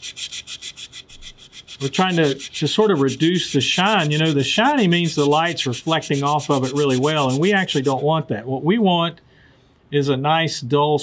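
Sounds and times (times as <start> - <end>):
sandpaper rubbing on steel: 0.0 - 8.0.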